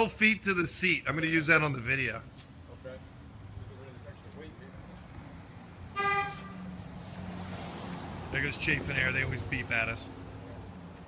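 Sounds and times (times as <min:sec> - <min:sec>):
van driving by: 0:01.7 - 0:11.0
van horn beep: 0:05.9 - 0:06.6.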